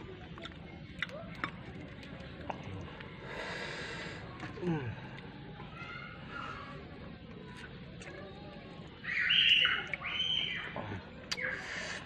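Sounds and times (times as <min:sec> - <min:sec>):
hissing breath: 0:03.2 - 0:04.3, 0:11.5 - 0:12.0
mouth clicks and lip smacks: 0:11.2 - 0:12.0.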